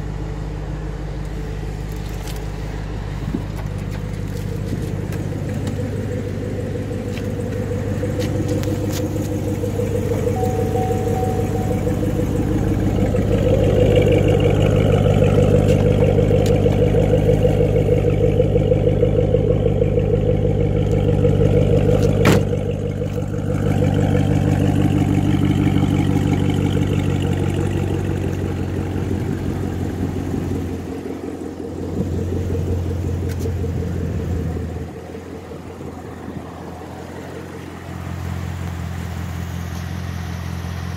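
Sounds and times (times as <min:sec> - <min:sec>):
car engine idling: 0:00.0 - 0:40.9.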